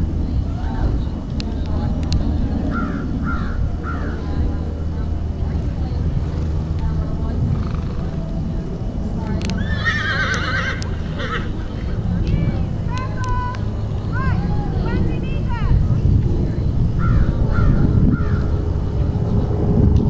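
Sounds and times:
steady low rumble: 0.0s - 20.0s
horse whinnying: 9.6s - 11.7s.

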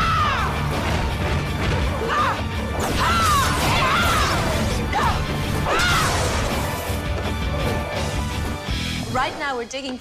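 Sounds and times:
action music: 0.0s - 10.0s.

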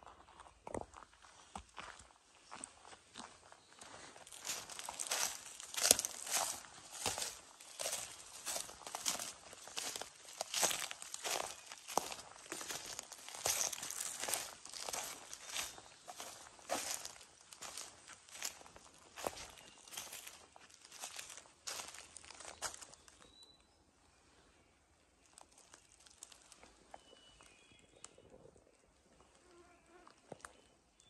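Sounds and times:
footsteps crunching through dry twigs: 0.1s - 23.2s, 25.2s - 27.6s.

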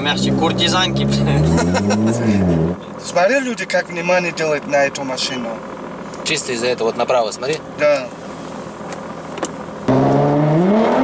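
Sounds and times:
car engine accelerating: 0.0s - 3.0s, 8.1s - 11.0s.

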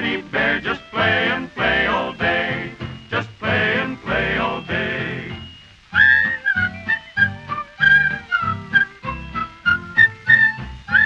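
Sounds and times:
country band playing: 0.0s - 11.0s
whistled melody: 0.6s - 11.0s.

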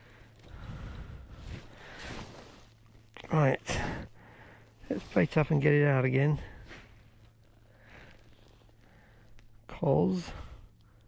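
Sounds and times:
soft rustle: 0.0s - 10.6s
faint low hum: 0.0s - 11.0s.

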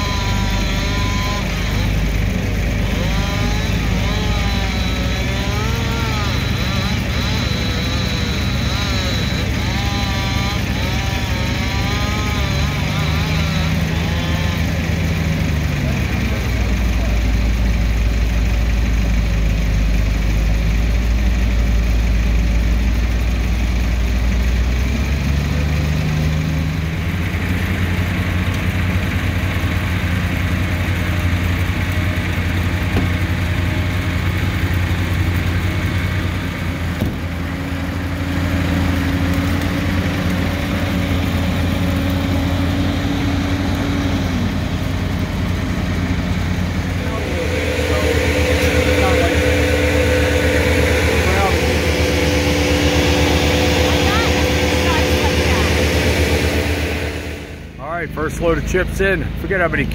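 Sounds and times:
engine tone sliding downward: 0.0s - 59.9s
heavy machinery engines running: 0.0s - 59.9s.

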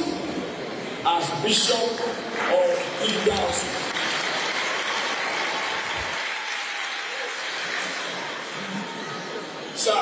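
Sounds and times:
crowd applauding: 2.7s - 9.8s.

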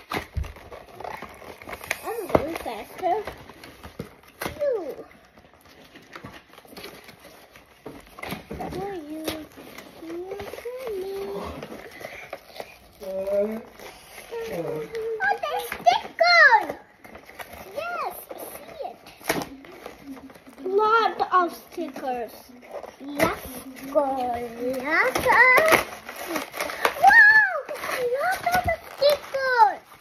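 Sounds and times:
children squealing and exclaiming: 14.2s - 16.9s, 17.6s - 19.1s, 23.0s - 30.0s.

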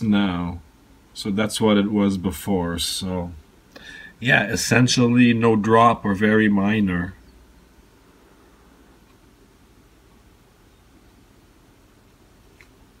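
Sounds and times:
low steady hum: 0.0s - 13.0s
faint click: 9.0s - 9.2s, 12.5s - 12.8s.

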